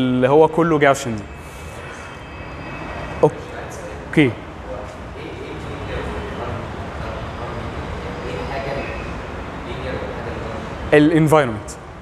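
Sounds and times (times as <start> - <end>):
man speaking: 0.0 - 1.9, 3.2 - 11.8
low room hum with hiss: 3.2 - 12.0.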